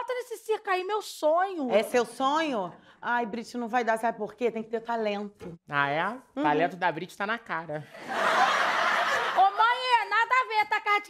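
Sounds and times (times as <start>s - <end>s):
woman speaking: 0.0s - 7.9s, 9.3s - 11.0s
studio audience laughing: 7.9s - 10.1s.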